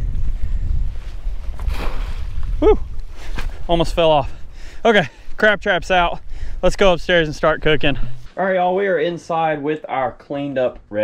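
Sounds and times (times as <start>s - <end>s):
wind rumbling on microphone: 0.0s - 8.3s.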